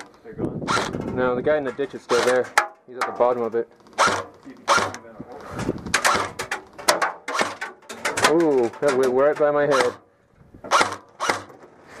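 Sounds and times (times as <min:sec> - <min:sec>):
airsoft gun shots: 0:03.9 - 0:05.0, 0:05.9 - 0:08.4, 0:10.7 - 0:11.5.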